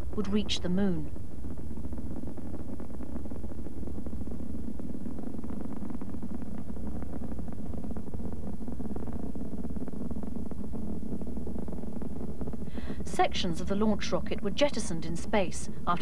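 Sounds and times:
rocket engines rumbling: 0:00.0 - 0:16.0.

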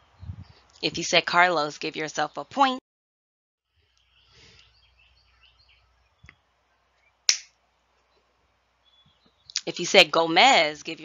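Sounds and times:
finger snap: 0:07.3 - 0:07.5.

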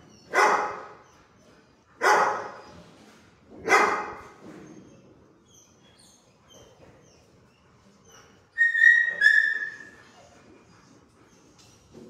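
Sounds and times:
dog whining: 0:04.6 - 0:12.0.

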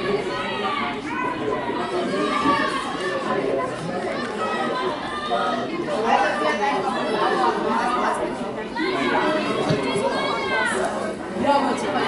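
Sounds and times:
overlapping chatter of people: 0:00.0 - 0:12.0.

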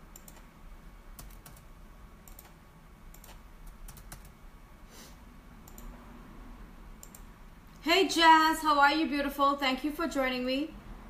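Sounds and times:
faint keyboard or mouse clicks: 0:05.6 - 0:06.0
woman speaking: 0:07.8 - 0:10.8.

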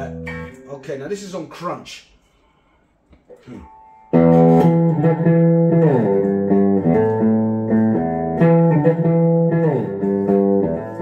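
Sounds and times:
faint held guitar tone: 0:00.0 - 0:01.6, 0:03.3 - 0:11.0.

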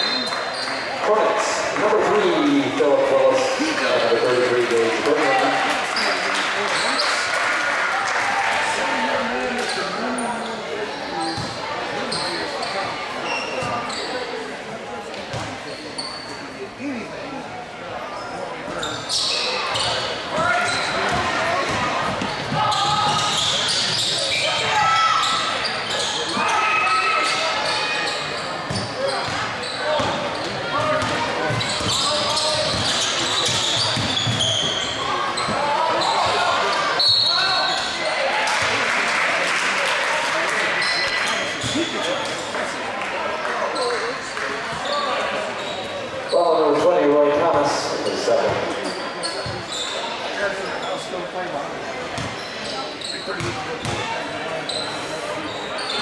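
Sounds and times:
sneaker squeaks: 0:00.0 - 0:00.9, 0:06.0 - 0:07.2, 0:09.6 - 0:14.4, 0:15.3 - 0:16.6, 0:18.0 - 0:38.2, 0:40.8 - 0:42.5, 0:43.7 - 0:46.7, 0:48.4 - 0:51.2, 0:52.0 - 0:56.0
crowd voices and shouts: 0:00.0 - 0:56.0.

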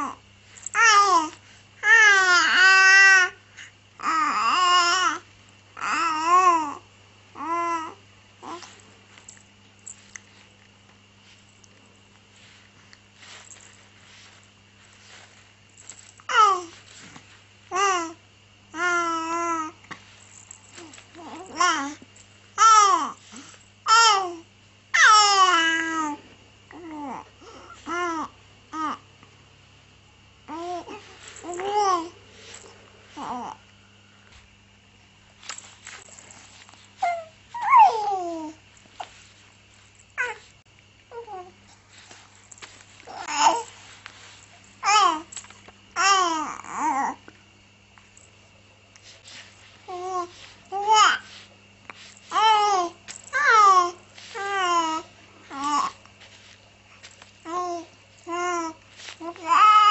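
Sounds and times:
baby cooing: 0:00.8 - 0:03.4, 0:04.0 - 0:05.2, 0:05.8 - 0:06.8, 0:07.4 - 0:08.7, 0:16.3 - 0:16.7, 0:17.7 - 0:18.2, 0:18.8 - 0:19.8, 0:20.8 - 0:22.0, 0:22.6 - 0:23.2, 0:25.0 - 0:29.0, 0:30.5 - 0:32.1, 0:33.2 - 0:33.6, 0:37.0 - 0:38.6, 0:40.2 - 0:40.4, 0:41.1 - 0:41.6, 0:43.1 - 0:43.7, 0:44.8 - 0:45.3, 0:46.0 - 0:47.2, 0:49.9 - 0:51.3, 0:52.3 - 0:56.0, 0:57.4 - 0:59.9.

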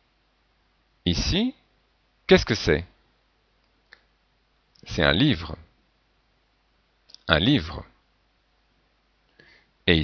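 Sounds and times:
man's voice: 0:01.1 - 0:01.6, 0:02.3 - 0:03.0, 0:04.8 - 0:05.7, 0:07.2 - 0:08.0.

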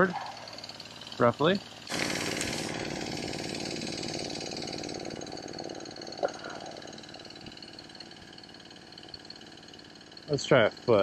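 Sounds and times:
sawmill engine running: 0:00.0 - 0:11.0.

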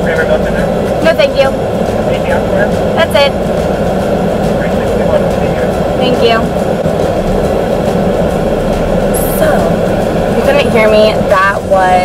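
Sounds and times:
idling car cabin hum: 0:00.0 - 0:12.0.

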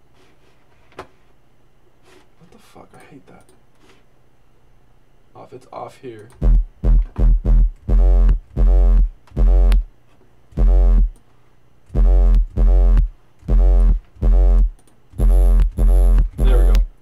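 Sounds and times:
distorted synth sub-bass notes: 0:06.4 - 0:09.9, 0:10.6 - 0:11.2, 0:11.9 - 0:16.9.

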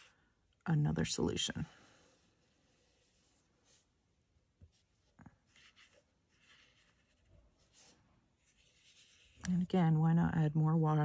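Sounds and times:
paintbrush brushing on paper: 0:01.9 - 0:04.0, 0:04.6 - 0:11.0.

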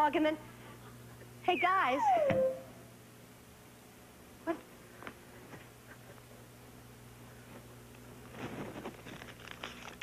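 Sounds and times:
low hum and faint hiss: 0:00.0 - 0:10.0.

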